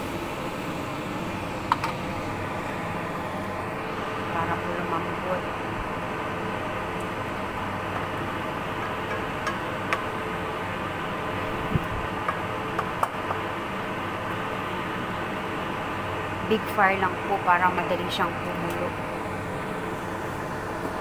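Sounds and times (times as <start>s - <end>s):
stove hissing: 0.0s - 21.0s.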